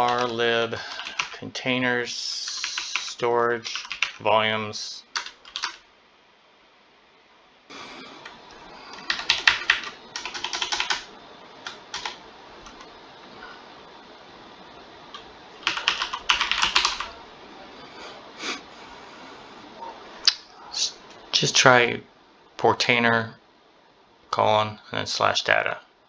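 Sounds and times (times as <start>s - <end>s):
computer keyboard typing: 0.0s - 1.4s, 2.3s - 4.2s, 5.1s - 5.8s, 8.2s - 12.9s, 15.1s - 17.2s.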